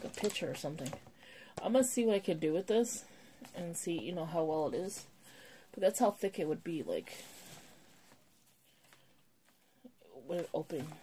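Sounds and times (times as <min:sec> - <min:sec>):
faint rustling of case and foam: 0:05.9 - 0:11.0.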